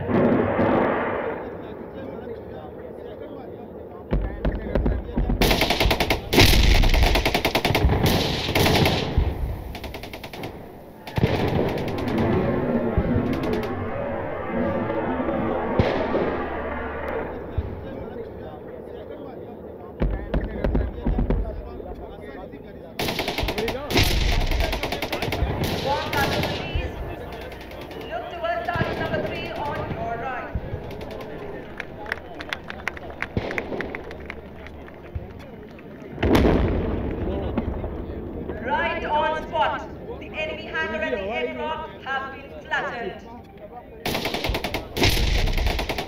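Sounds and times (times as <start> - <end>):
distant heavy blast: 0.0 - 2.2, 4.1 - 19.0, 20.0 - 40.1, 44.1 - 46.0
rapid crackling reports: 0.0 - 43.3, 44.0 - 46.0
spectators' voices: 0.0 - 46.0.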